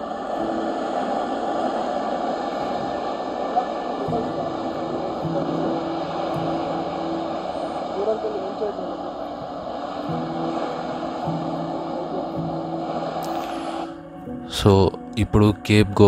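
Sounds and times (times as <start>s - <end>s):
surf rushing: 0.0s - 15.5s
wind: 0.0s - 15.6s
soft background music: 0.0s - 16.0s.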